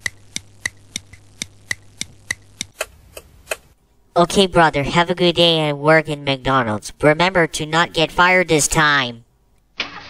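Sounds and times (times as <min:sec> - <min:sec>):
clock ticking: 0:00.0 - 0:03.6.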